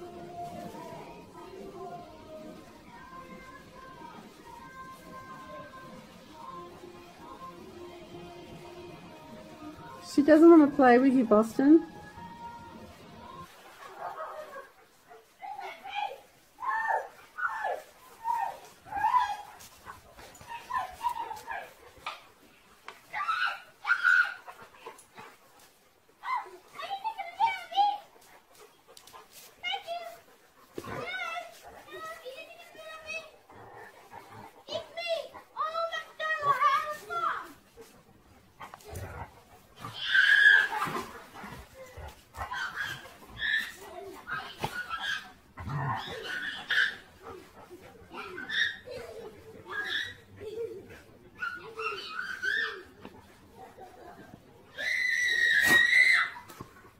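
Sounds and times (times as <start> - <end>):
dogs yipping and whining: 11.9 - 22.2, 23.0 - 56.9.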